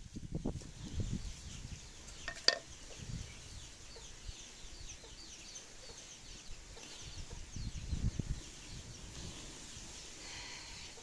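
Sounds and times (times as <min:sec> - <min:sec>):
birds chirping: 0:00.2 - 0:11.0.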